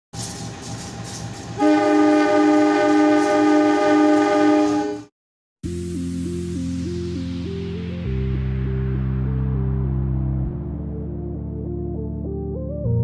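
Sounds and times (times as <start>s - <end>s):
locomotive air horn blast: 1.6s - 5.1s
electronic music: 5.6s - 13.0s
low rumble: 8.1s - 12.4s.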